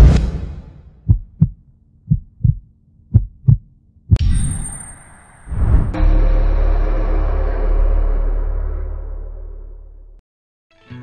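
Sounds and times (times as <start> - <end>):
heartbeat thumps: 1.0 - 4.2
sharp hit with high whine: 4.2 - 10.2.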